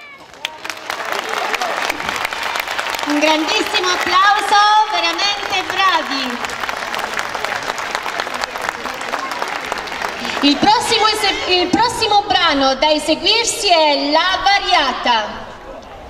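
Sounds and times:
audience applause: 0.0s - 11.6s.

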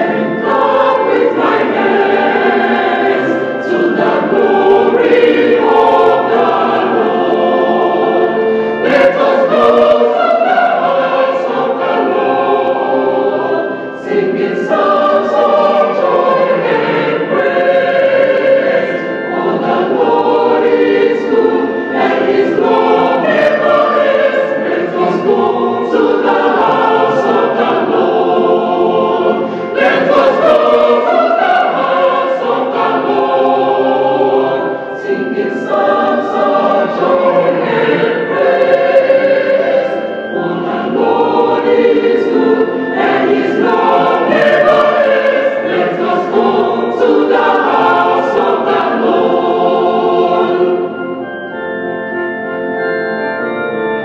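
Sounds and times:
choir singing a hymn: 0.0s - 52.8s.

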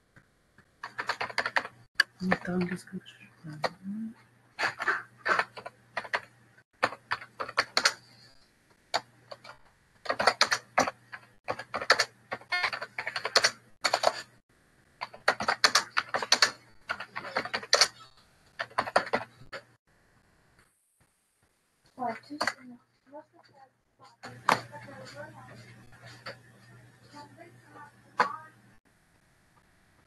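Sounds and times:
typing on computer keyboard: 0.8s - 2.4s, 5.3s - 8.0s, 9.0s - 14.2s, 15.0s - 17.9s.

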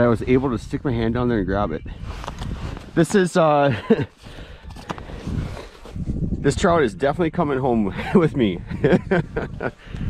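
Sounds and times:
camera handling rumble and rustling: 2.0s - 6.4s
man laughing: 3.6s - 4.2s, 7.9s - 9.9s.

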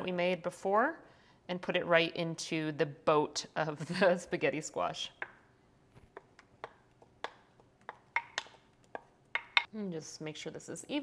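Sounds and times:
wooden spoon tapping bowl: 6.1s - 9.7s.

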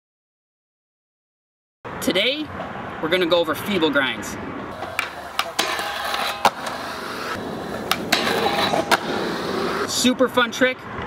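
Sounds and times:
skateboard wheels rolling on concrete: 2.5s - 11.0s
skateboard clacks: 4.8s - 9.9s
trucks grinding on metal rail: 4.8s - 9.9s.

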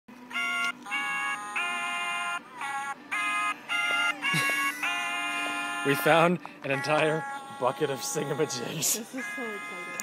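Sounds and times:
plush toys singing electronic notes: 0.2s - 10.0s.

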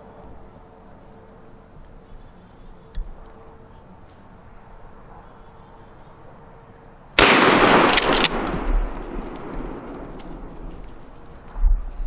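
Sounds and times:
loud gunshot echoing: 7.2s - 10.1s
sharp crackles: 7.2s - 12.0s.

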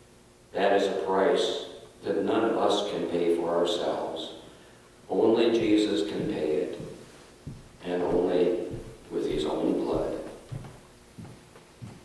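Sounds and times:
man speaking into a microphone: 5.1s - 7.0s, 7.8s - 10.4s.

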